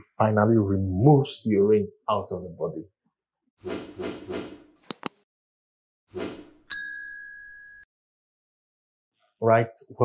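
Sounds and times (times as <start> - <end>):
notification bell ding: 6.7 - 7.8.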